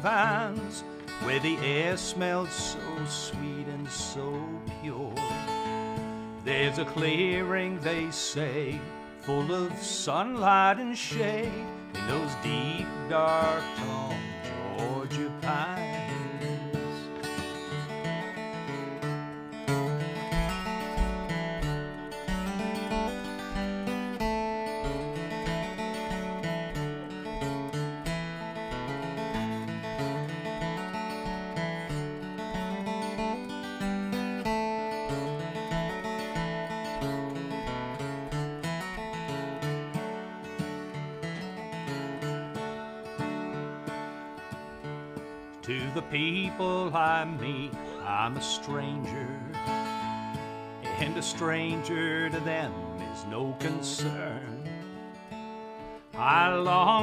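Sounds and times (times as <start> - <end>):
acoustic guitar strummed and picked: 0.0 - 57.0.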